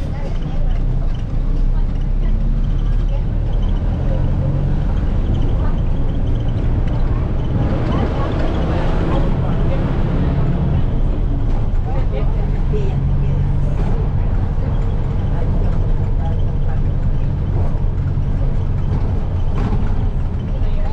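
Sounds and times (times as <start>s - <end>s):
bus engine drone: 0.0s - 20.9s
road and rattle noise: 0.0s - 20.9s.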